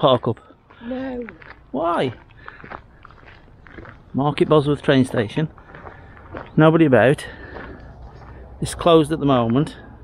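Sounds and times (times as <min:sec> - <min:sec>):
footsteps on gravel: 0:00.0 - 0:09.4.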